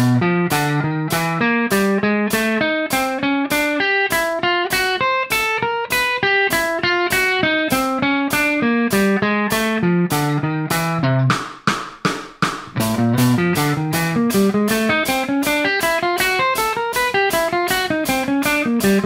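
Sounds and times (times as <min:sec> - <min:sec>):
electric guitar single notes: 0:00.0 - 0:11.4, 0:12.7 - 0:19.0.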